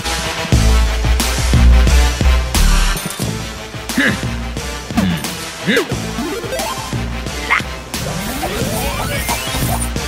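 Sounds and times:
cartoon music with rising glide: 5.2 - 10.0.

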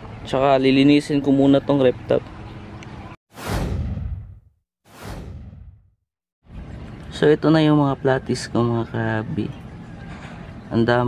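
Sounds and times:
swoosh sound effect: 3.3 - 5.9.

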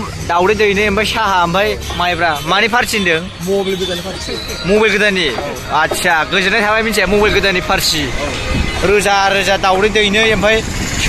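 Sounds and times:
street traffic engine hum: 0.0 - 11.0.

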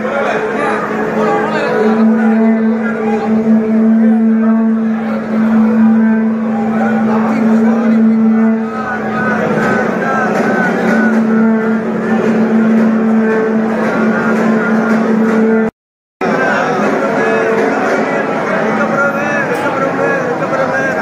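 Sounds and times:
dense crowd voices: 0.0 - 21.0
low droning tone: 1.2 - 15.7.

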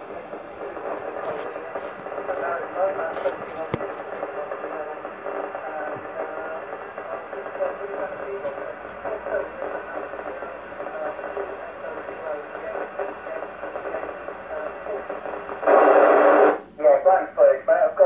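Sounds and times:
burst of static: 0.0 - 17.1
radio hiss: 0.0 - 18.0
voice over radio speaker: 0.0 - 18.0.

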